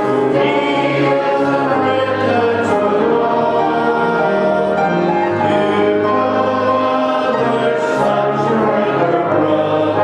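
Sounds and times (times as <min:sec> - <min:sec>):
choir singing held chords: 0:00.0 - 0:10.0.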